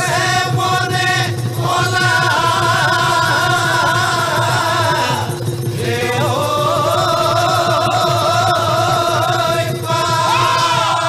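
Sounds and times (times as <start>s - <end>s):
dhol drum beat: 0.0s - 11.0s.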